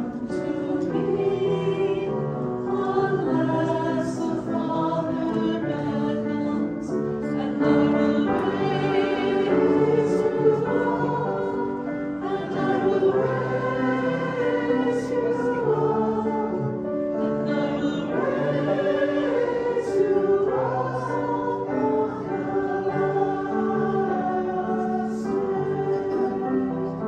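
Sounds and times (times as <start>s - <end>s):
choir singing a hymn: 0.0s - 27.0s
musical accompaniment: 0.0s - 27.0s.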